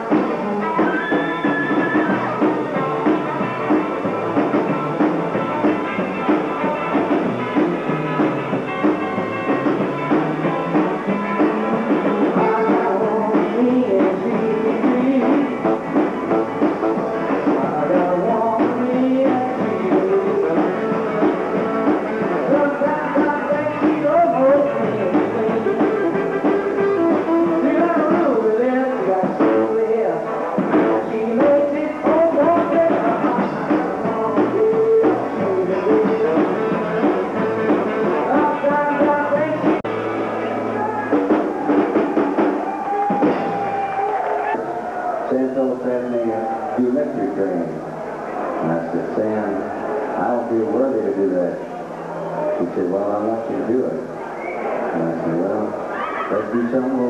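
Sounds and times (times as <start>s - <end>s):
electric guitar: 0.0s - 57.0s
upright double bass: 2.0s - 28.2s
man singing into a microphone: 12.3s - 15.7s, 17.0s - 26.2s, 26.8s - 39.8s.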